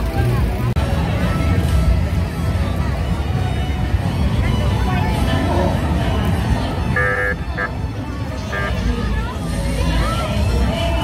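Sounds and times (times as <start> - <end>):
crowd rumble: 0.0 - 11.0
horn toots: 6.8 - 9.0.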